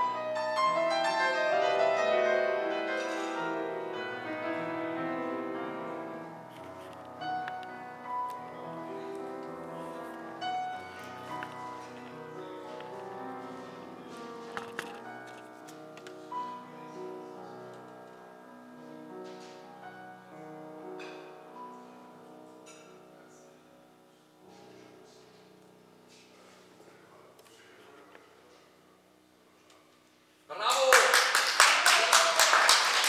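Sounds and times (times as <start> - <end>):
grand piano playing slow music: 0.0 - 27.1
audience applauding: 30.6 - 33.0.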